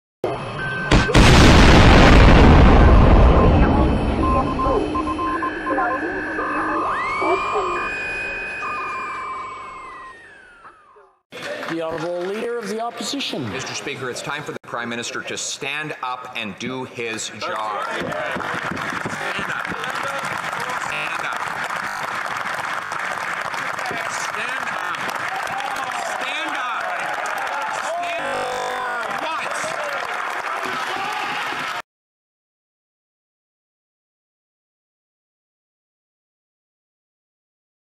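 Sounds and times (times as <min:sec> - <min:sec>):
boom rumble: 0:00.9 - 0:05.0
short beeps: 0:02.6 - 0:11.0, 0:28.2 - 0:29.0
crowd applauding: 0:11.3 - 0:14.1, 0:17.4 - 0:31.8
voices shouting and cheering: 0:17.3 - 0:18.6, 0:23.8 - 0:31.8.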